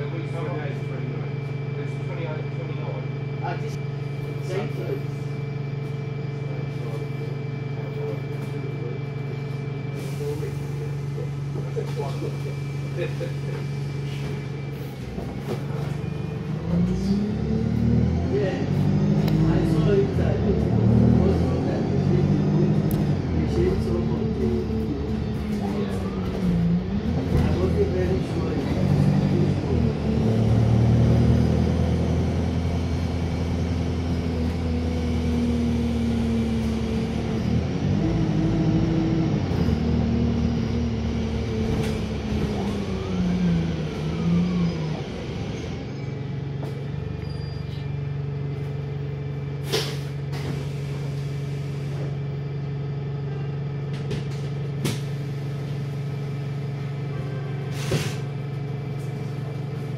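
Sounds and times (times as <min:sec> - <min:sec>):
bus diesel engine: 0:00.0 - 0:59.9
air brake hisses: 0:49.6 - 0:52.1, 0:57.7 - 0:58.3.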